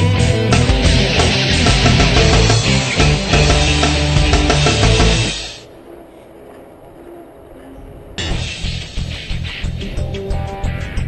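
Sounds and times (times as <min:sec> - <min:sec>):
rock music: 0:00.0 - 0:05.6, 0:08.2 - 0:11.0.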